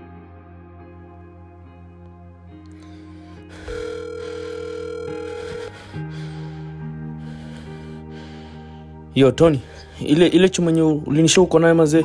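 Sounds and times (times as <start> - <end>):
ambient background music: 0.0 - 12.0
telephone ringing tone: 3.5 - 6.0.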